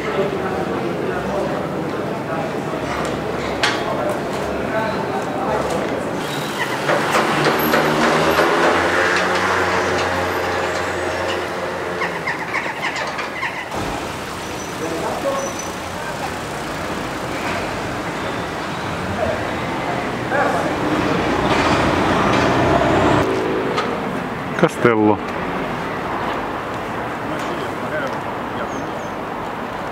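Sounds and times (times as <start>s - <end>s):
people's voices: 0.0s - 29.9s
street noise: 0.0s - 29.9s
large vehicle engine humming: 5.8s - 27.9s.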